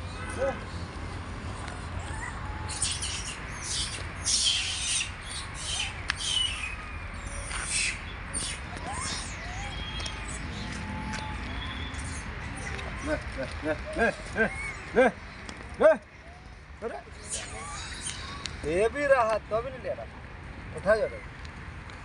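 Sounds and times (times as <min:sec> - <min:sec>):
animal squawks and chirps: 0:02.0 - 0:13.1, 0:17.2 - 0:18.6.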